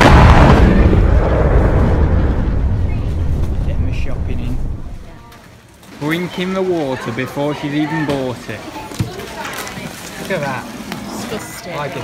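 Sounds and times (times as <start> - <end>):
explosion rumbling boom: 0.0 - 5.2.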